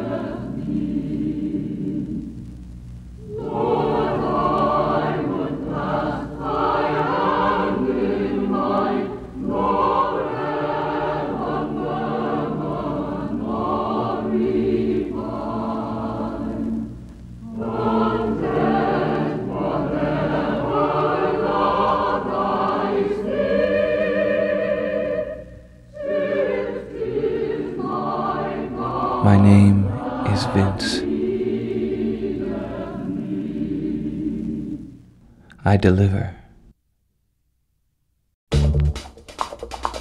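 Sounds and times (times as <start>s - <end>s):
choir singing: 0.0s - 2.3s, 3.2s - 35.0s.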